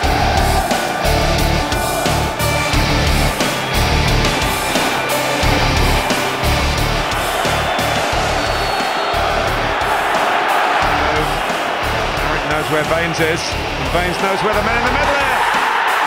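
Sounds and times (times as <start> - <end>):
rock music with heavy bass beat: 0.0 - 16.0.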